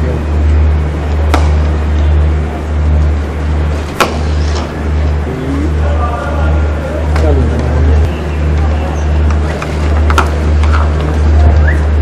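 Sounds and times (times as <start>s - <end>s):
cricket bat striking ball: 1.1s - 1.9s, 3.9s - 4.8s, 10.0s - 10.9s.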